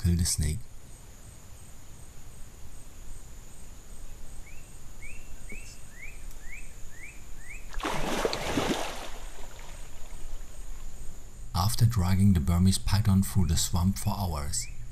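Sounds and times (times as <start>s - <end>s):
bird chirping: 4.0s - 7.8s, 13.8s - 14.9s
water splashing: 7.7s - 10.8s.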